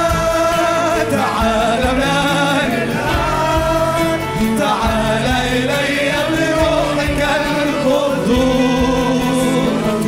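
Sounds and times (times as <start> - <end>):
group singing worship song: 0.0 - 10.0
praise band playing: 0.0 - 10.0.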